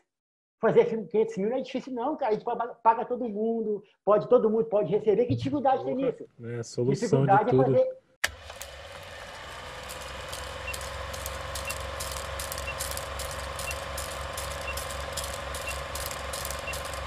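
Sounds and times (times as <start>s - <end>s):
mechanical whirring with clicks: 8.2s - 17.0s.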